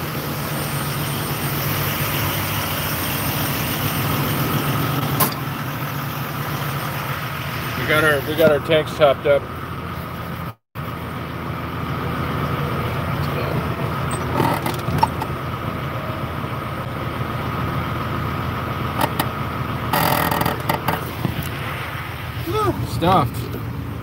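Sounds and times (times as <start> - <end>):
diesel engine idling: 0.0 - 24.0.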